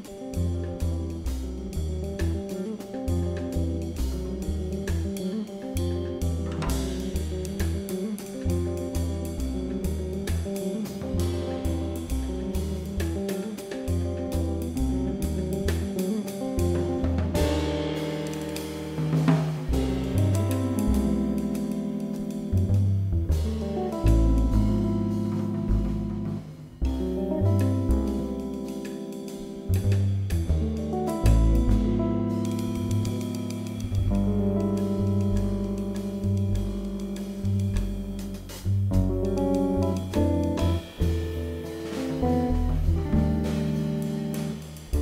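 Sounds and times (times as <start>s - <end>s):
drum kit with cymbals: 0.0s - 45.0s
electric guitar lines: 0.0s - 45.0s
upright double bass: 0.0s - 45.0s.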